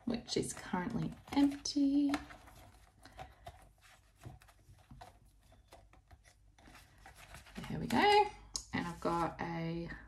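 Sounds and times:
plastic envelope rustling: 0.0s - 9.4s.

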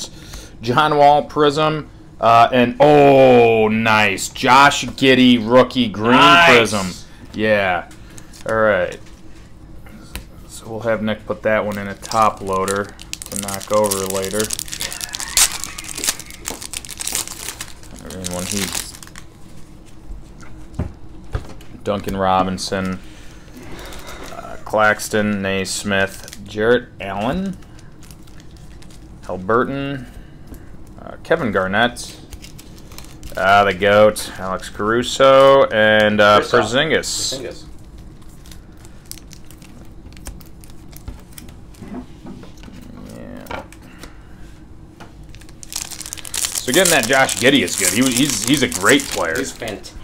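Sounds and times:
foil wrapper crinkling and tearing: 11.4s - 19.4s, 26.0s - 26.5s, 27.2s - 29.3s, 32.1s - 33.8s, 37.3s - 41.8s, 45.2s - 50.0s
cards clicking and rustling: 11.5s - 19.3s, 45.3s - 49.9s.

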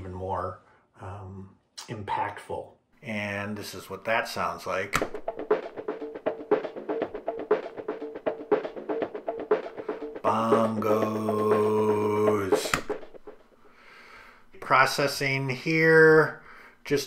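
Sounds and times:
beat with bass guitar: 5.0s - 13.5s
filtered bongo drum loop: 5.0s - 13.7s.

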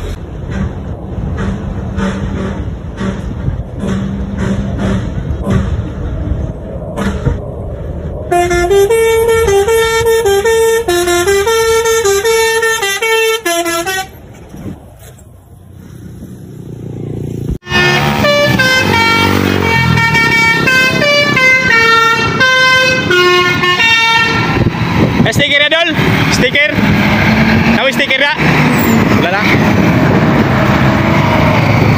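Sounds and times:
engine and road noise: 0.0s - 31.9s
musical air horn tune: 8.3s - 14.1s, 17.6s - 24.5s.

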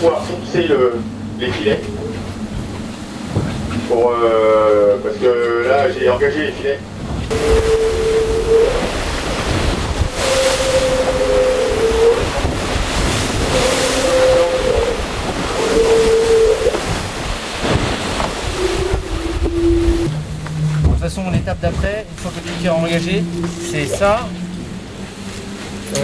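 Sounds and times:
sea rushing: 0.0s - 26.0s
wind: 0.0s - 26.0s
wind buffeting microphone: 6.2s - 26.0s
humming whine: 6.8s - 26.0s.

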